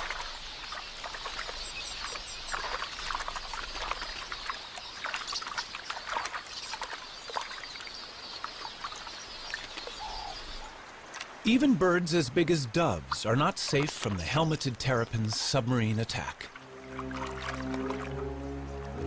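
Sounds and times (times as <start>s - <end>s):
flock of birds twittering: 0.0s - 10.8s
splashes in shallow water: 0.0s - 19.0s.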